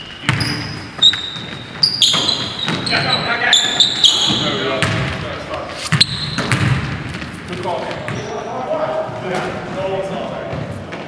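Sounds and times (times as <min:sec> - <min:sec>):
players calling out: 0:00.1 - 0:05.4
basketball bouncing: 0:00.2 - 0:03.1, 0:04.0 - 0:05.2, 0:05.9 - 0:08.2.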